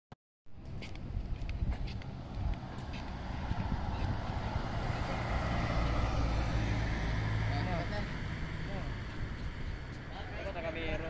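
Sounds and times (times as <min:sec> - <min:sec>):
vehicle driving past: 0:02.0 - 0:10.8.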